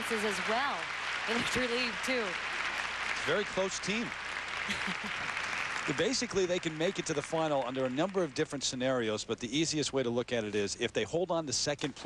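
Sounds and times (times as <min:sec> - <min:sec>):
audience applauding: 0:00.0 - 0:09.3.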